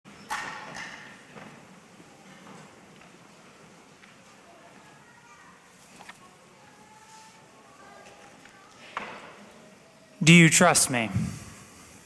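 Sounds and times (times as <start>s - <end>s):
sharp knocks echoing in church: 0.3s - 1.6s.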